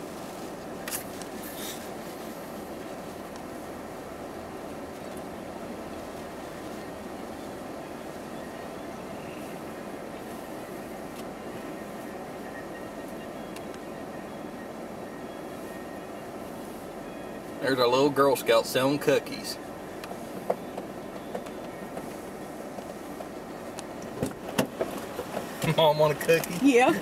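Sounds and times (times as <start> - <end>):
car cabin engine hum: 0.0 - 27.0.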